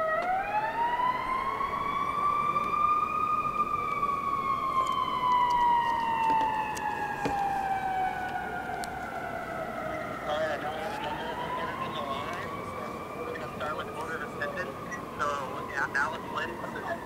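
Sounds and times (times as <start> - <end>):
siren wailing: 0.0 - 17.0.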